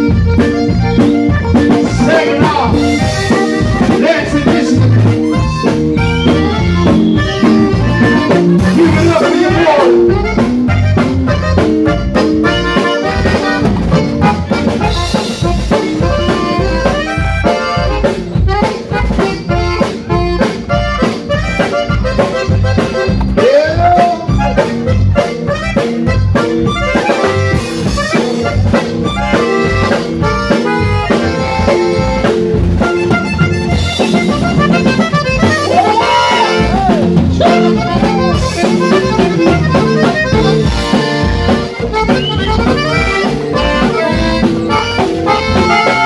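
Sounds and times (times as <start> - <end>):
button accordion melody: 0.0 - 46.0
drum kit beat: 0.0 - 46.0.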